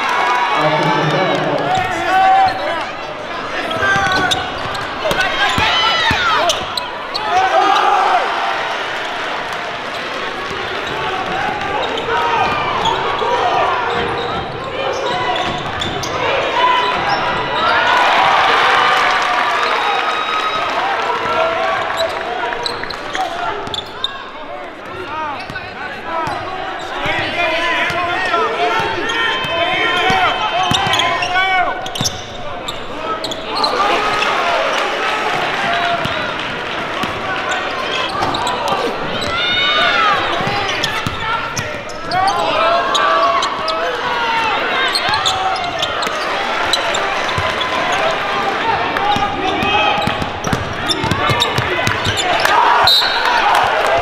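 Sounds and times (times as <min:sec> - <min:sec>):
sneakers squealing on court: 0:01.7 - 0:08.2, 0:09.9 - 0:18.0, 0:21.9 - 0:34.9, 0:35.6 - 0:48.4, 0:49.0 - 0:53.4.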